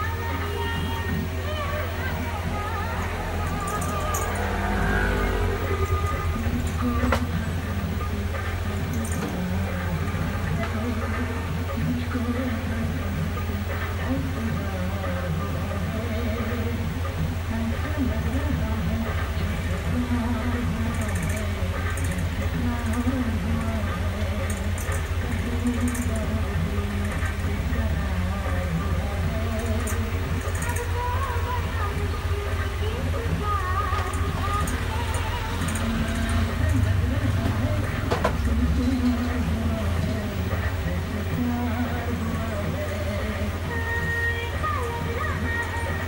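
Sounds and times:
faint music: 0.0 - 46.0.

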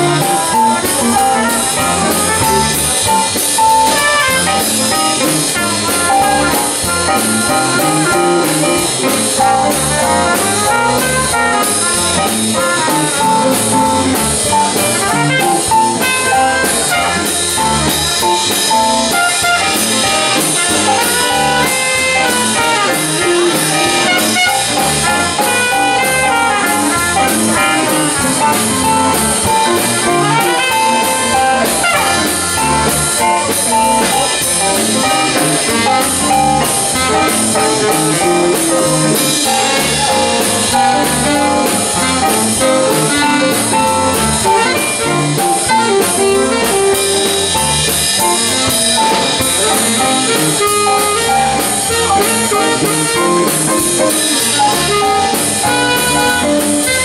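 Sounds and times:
cymbal swing beat: 0.0 - 57.0
trumpet and saxophone melody: 0.0 - 57.0.

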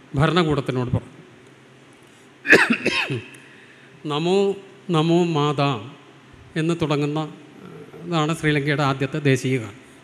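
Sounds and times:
man coughing: 2.5 - 3.3.

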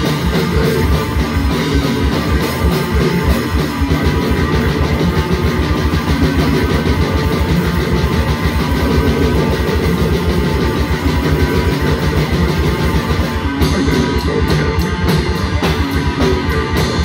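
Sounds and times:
distorted electric guitar: 0.0 - 17.0
very fast drumming: 0.0 - 17.0.

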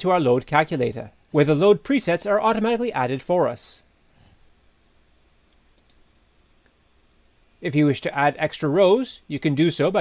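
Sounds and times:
computer mouse click: 5.5 - 6.8.

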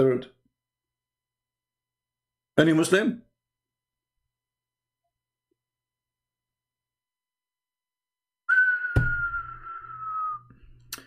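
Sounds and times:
steady whistling tone: 8.5 - 11.0.

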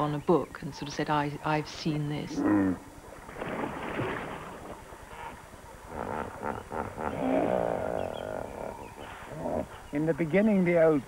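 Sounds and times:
hippopotamus grunting and honking: 2.2 - 2.9, 5.0 - 10.0.

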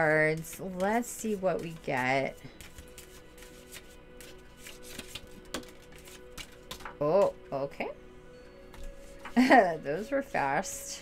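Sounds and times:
quiet background music: 0.0 - 11.0
cards being shuffled: 0.3 - 7.0.

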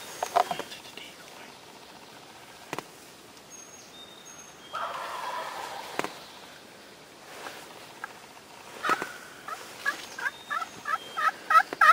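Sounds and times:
turkey gobbling: 4.7 - 6.1, 8.8 - 11.9.

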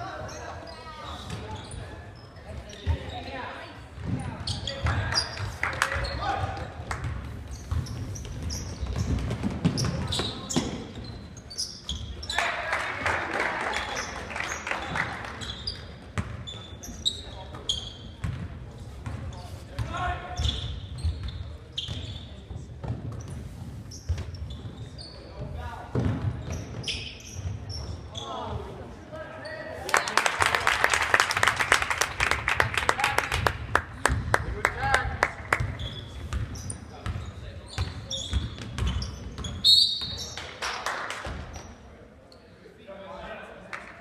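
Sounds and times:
sneakers squeaking: 0.0 - 12.7, 13.5 - 29.8, 35.2 - 42.6
crowd clapping and cheering: 4.9 - 6.0, 12.3 - 15.4, 29.8 - 35.7, 40.4 - 41.4.

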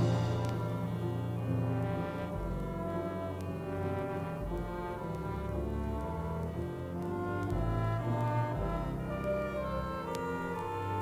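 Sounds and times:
orchestral music from vinyl: 0.0 - 11.0.

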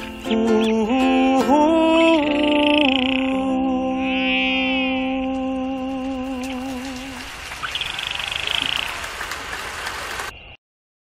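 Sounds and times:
man humming with vibrato: 0.0 - 7.2
steady outdoor hiss: 0.0 - 10.6.

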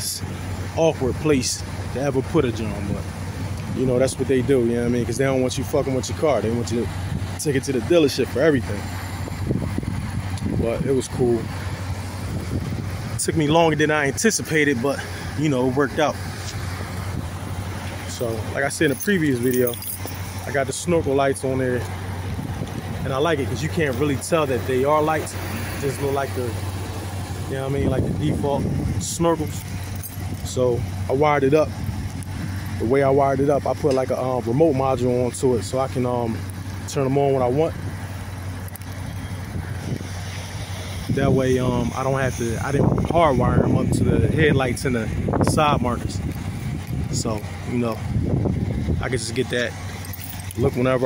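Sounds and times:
car engine idling: 0.0 - 51.0
faint outdoor hiss: 0.0 - 51.0.

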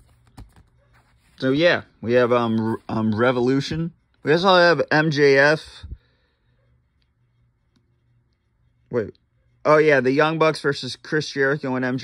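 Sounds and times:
man speaking: 1.4 - 6.0, 8.9 - 12.0.

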